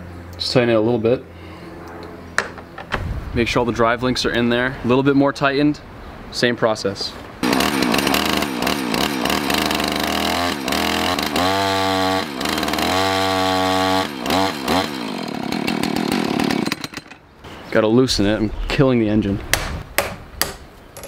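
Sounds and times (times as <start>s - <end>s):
chainsaw revving: 7.4s - 17.2s.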